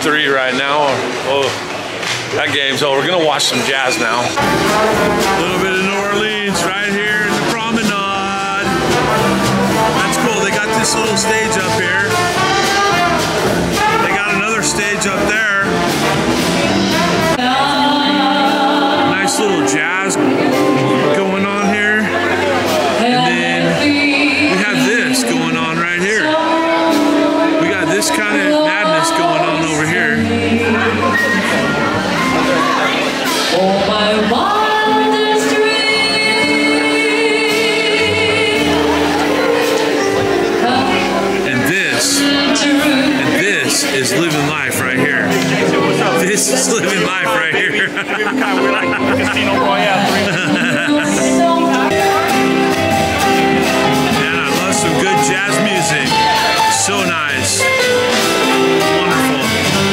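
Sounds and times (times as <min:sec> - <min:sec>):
jazz band playing: 0:00.0 - 0:59.9.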